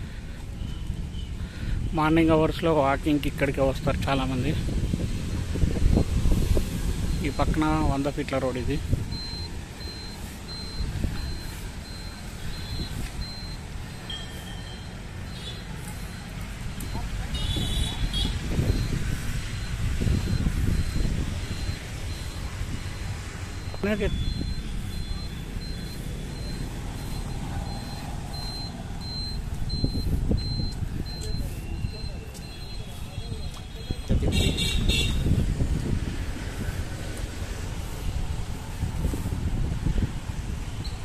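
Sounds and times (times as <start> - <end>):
road traffic rumble: 0.0 - 41.0
high electronic beeps: 8.6 - 34.2
low electronic tone: 9.1 - 32.8.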